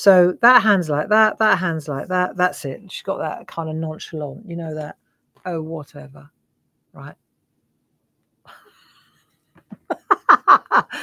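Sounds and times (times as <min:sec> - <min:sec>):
woman laughing: 0:08.5 - 0:11.0.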